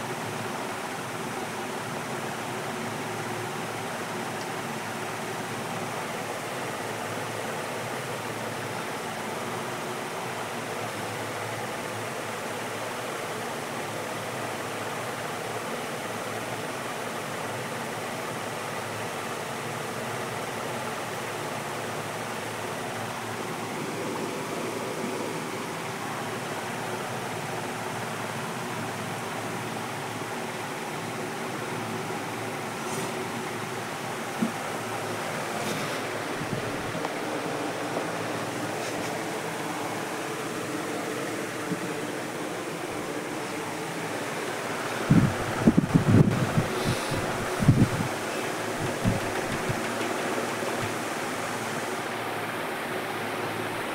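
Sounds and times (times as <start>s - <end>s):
aquarium water rushing: 0.0s - 53.9s.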